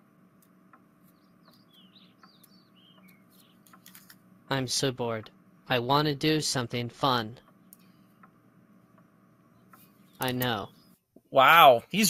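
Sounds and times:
small birds chirping: 0.5s - 4.1s, 9.0s - 11.0s.

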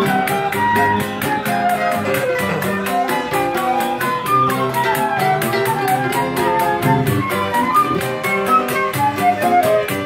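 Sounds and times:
flute melody: 0.0s - 10.0s
plucked strings: 0.0s - 10.0s.

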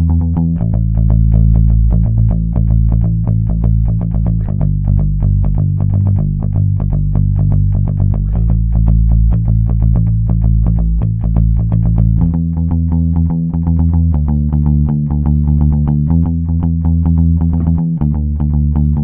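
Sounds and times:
electric bass guitar playing: 0.0s - 19.0s.

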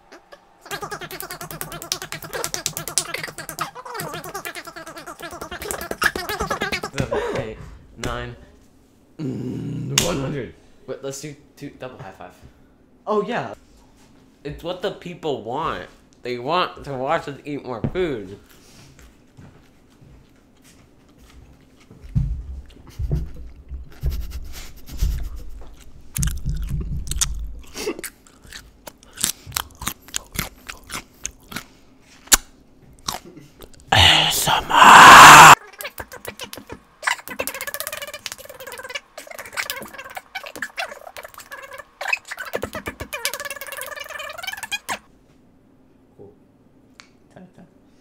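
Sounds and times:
wavering vocal humming: 0.0s - 7.7s, 33.9s - 44.6s
crunching raw carrots: 25.7s - 32.4s.

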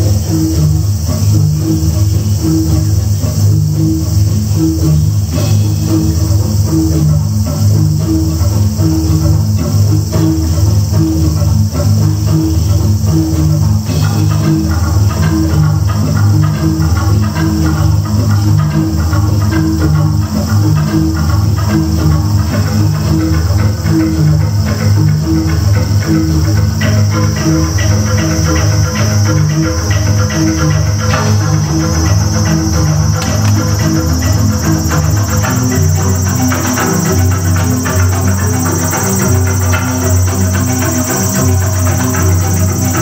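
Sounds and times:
gamelan percussion: 0.0s - 43.0s
electronic drum kit: 13.4s - 43.0s.

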